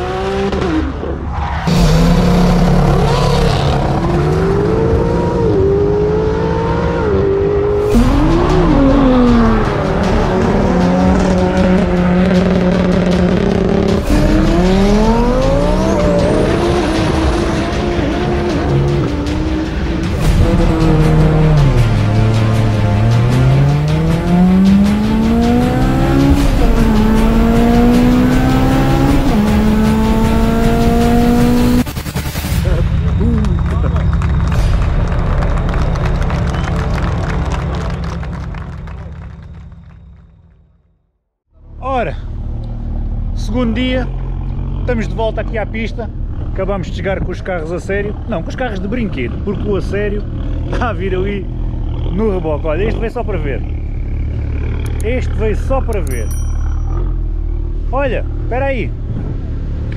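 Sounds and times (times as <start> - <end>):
race car engines accelerating: 0.0 - 40.3, 41.6 - 59.9
background music with low beat: 1.7 - 40.3.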